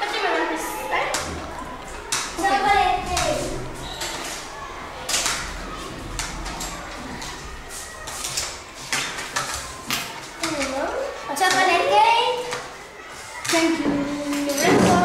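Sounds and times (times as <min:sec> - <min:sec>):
children's voices: 0:00.0 - 0:15.0.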